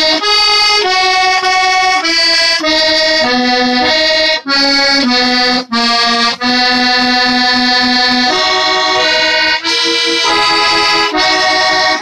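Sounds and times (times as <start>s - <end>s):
accordion playing held chords: 0.0s - 12.0s.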